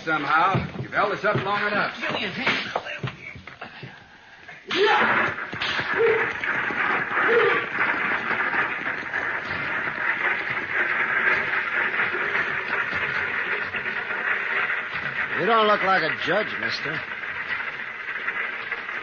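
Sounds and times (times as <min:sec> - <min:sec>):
stagecoach wheels and hooves rumbling: 0:00.0 - 0:04.0, 0:05.1 - 0:19.0.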